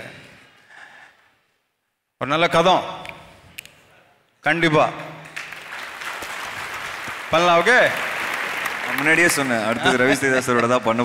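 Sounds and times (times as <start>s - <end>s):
audience applause: 5.4s - 10.6s
man's voice: 8.9s - 11.0s.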